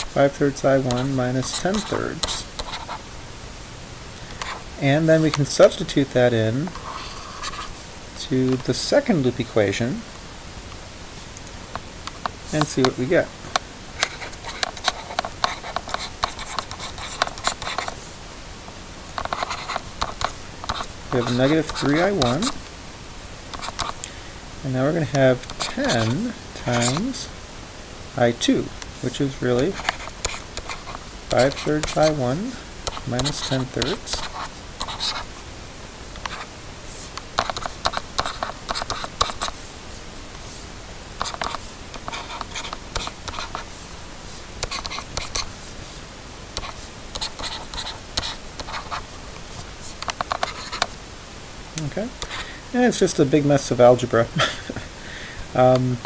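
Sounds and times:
stylus ticking and scratching on screen: 0:00.0 - 0:03.0, 0:06.7 - 0:07.8, 0:11.4 - 0:18.0, 0:19.1 - 0:22.6, 0:23.5 - 0:24.0, 0:25.0 - 0:27.3, 0:29.1 - 0:35.3, 0:36.2 - 0:39.6, 0:41.2 - 0:45.6, 0:46.6 - 0:51.0, 0:51.8 - 0:52.5.

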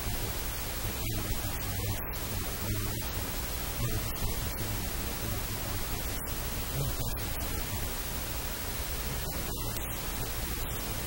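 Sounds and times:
static hiss: 0:00.0 - 0:11.0.

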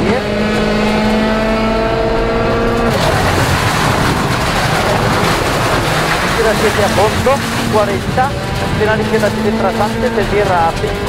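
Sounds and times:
car engine at high revs: 0:00.0 - 0:11.0
rushing of tyres gravel and wind: 0:02.7 - 0:11.0.

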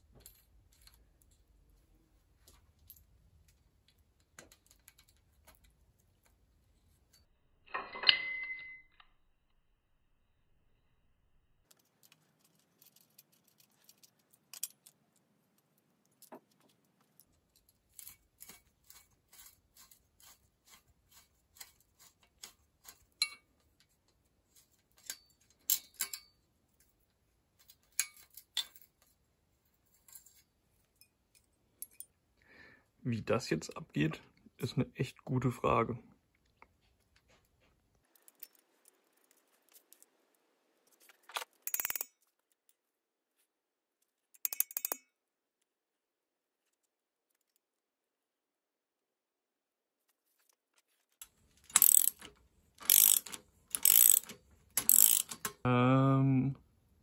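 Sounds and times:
handling clatter: 0:11.7 - 0:32.1
spanner clicking on metal: 0:25.0 - 0:26.3, 0:41.7 - 0:42.1, 0:44.4 - 0:45.1, 0:51.6 - 0:55.6.

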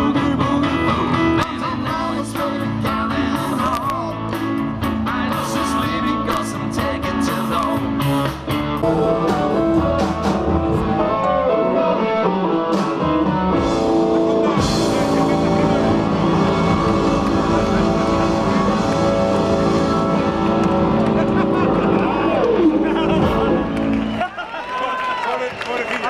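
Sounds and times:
upright double bass: 0:00.0 - 0:11.6, 0:12.8 - 0:24.2
electric guitar bending notes: 0:00.0 - 0:24.2
drums: 0:00.0 - 0:24.5.

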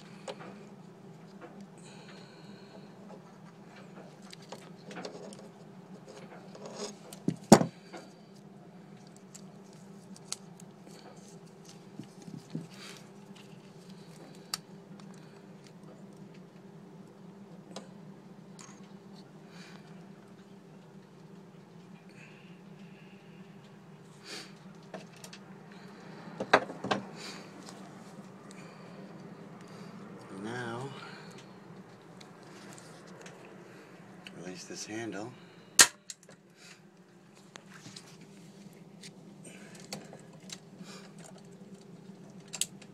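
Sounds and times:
steady low hum: 0:00.0 - 0:42.9.

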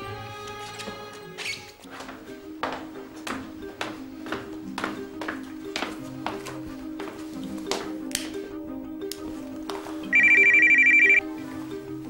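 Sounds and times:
background music: 0:00.0 - 0:12.0
mobile phone ringing: 0:10.1 - 0:11.2.

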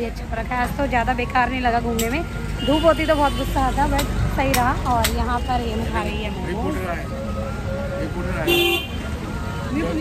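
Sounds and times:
street chatter: 0:00.0 - 0:10.0
traffic rumble: 0:00.0 - 0:10.0
car horn toot: 0:08.4 - 0:09.0.

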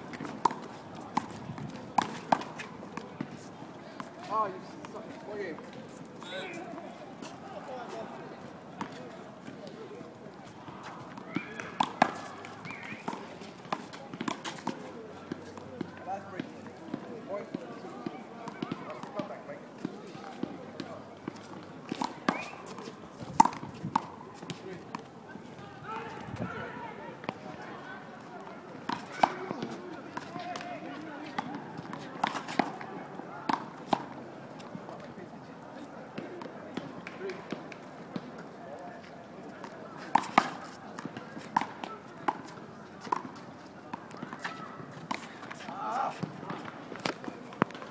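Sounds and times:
faint voices: 0:00.0 - 0:47.9
footsteps on paved court: 0:00.0 - 0:47.9.

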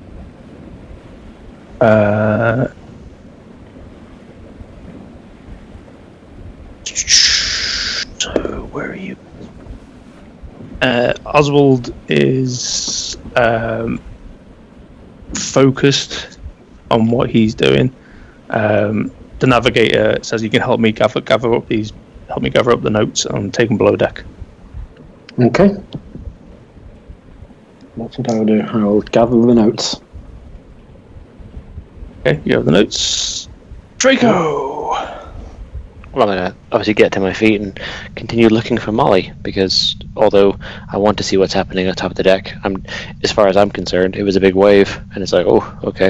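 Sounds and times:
sea waves: 0:00.0 - 0:46.0
wind: 0:00.0 - 0:46.0.

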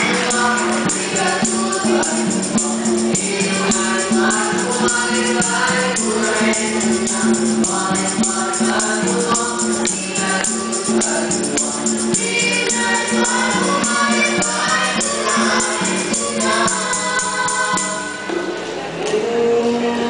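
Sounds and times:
bright percussion beat: 0:00.0 - 0:18.3
boys singing in harmony: 0:00.0 - 0:20.0.

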